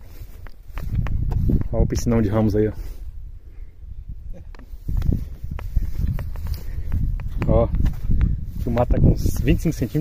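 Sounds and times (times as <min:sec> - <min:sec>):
footsteps on dry grass: 0:00.0 - 0:03.3, 0:04.6 - 0:10.0.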